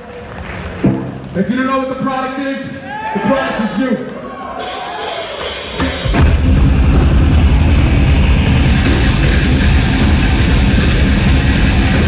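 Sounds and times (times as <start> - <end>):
hardcore punk band playing: 4.6 - 12.0.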